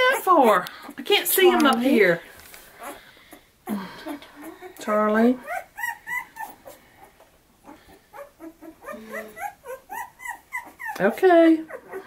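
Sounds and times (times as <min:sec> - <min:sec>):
puppy whimpering: 0:03.7 - 0:12.0.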